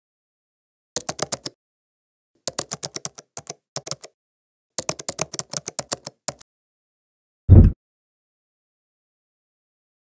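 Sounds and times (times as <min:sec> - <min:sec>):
keyboard keystroke clicks: 0:02.5 - 0:04.2.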